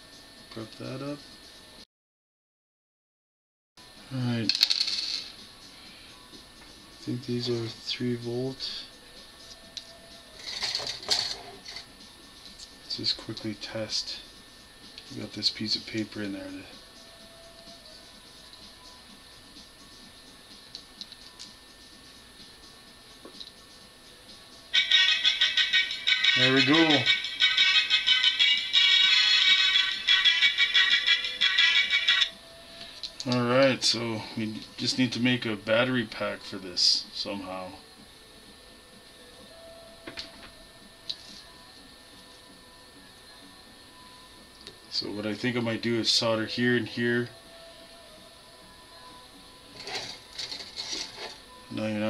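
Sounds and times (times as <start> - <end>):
small parts scraping: 10.4 - 11.8, 49.7 - 51.4.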